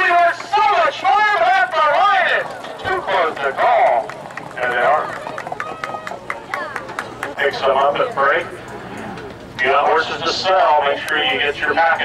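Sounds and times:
hoofbeats on dirt track: 0.0s - 7.4s.

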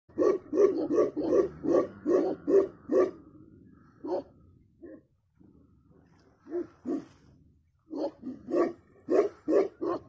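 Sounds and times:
dog barking deeply: 0.1s - 3.3s, 4.0s - 5.1s, 6.4s - 7.1s, 7.9s - 10.0s.

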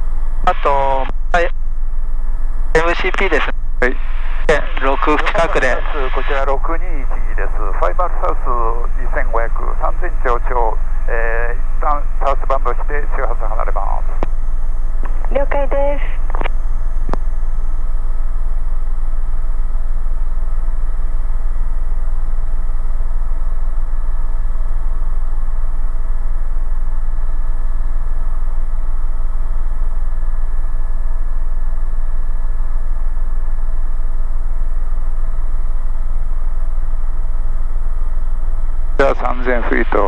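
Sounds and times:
turbine and gearbox whine: 0.0s - 40.0s
helicopter rotor drone: 2.8s - 14.0s.

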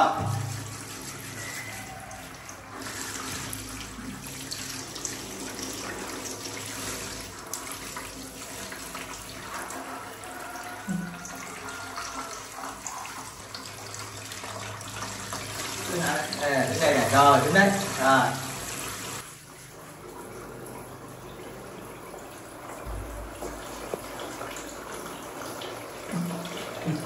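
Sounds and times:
shower water splashing into tub: 0.0s - 27.0s.

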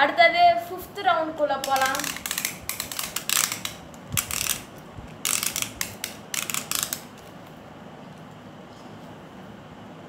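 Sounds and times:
plastic launcher ratcheting: 1.6s - 7.1s.

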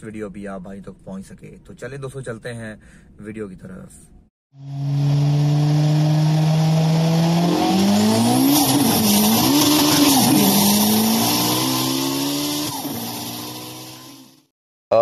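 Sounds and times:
race car engine revving: 4.6s - 14.5s.

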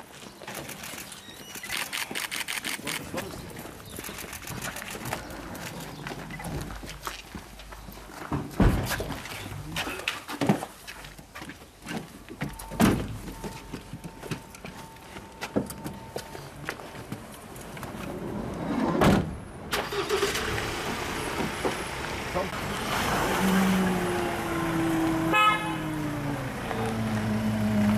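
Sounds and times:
footsteps on pavement: 0.0s - 18.2s
street noise: 0.0s - 27.9s
sliding door slamming: 18.3s - 21.7s.

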